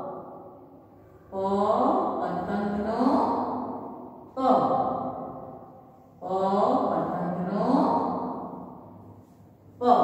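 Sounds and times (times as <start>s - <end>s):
woman chanting a syllable: 1.3s - 5.3s, 6.2s - 8.6s, 9.8s - 10.0s.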